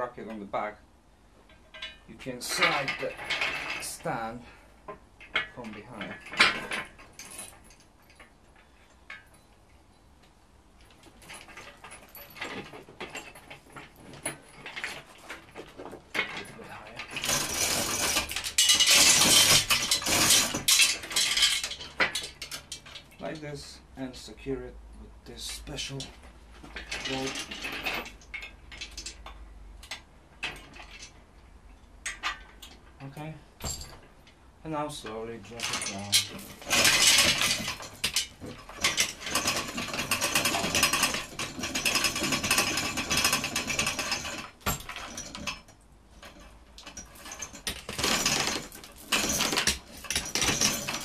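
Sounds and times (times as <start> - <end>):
metal parts clanking and rattling: 1.4 - 10.1, 10.8 - 23.6, 25.4 - 51.0
metal clinks knocks and scrapes: 1.4 - 23.6, 25.4 - 51.0
metal clicks and clinks: 35.5 - 51.0.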